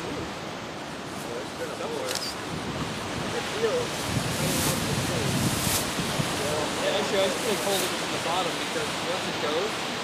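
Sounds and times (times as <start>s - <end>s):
wind buffeting microphone: 0.0s - 9.1s
waves washing on rocky shore: 0.0s - 10.0s.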